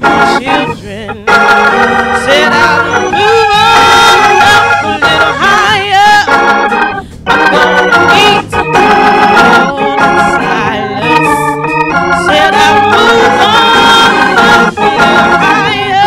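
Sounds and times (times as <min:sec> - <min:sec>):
woman singing: 0:00.0 - 0:06.4, 0:07.5 - 0:08.6, 0:09.3 - 0:11.5, 0:12.2 - 0:16.0
organ chords: 0:00.0 - 0:16.0.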